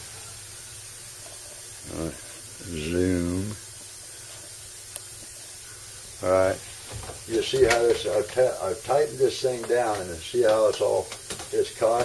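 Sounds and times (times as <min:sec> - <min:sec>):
steady low hiss: 0:00.0 - 0:12.0
man murmuring: 0:01.8 - 0:03.6.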